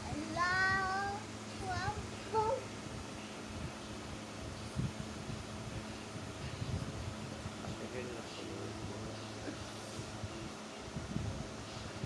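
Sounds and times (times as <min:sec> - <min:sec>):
young child's voice: 0:00.0 - 0:02.7
steady low hum: 0:00.0 - 0:12.0.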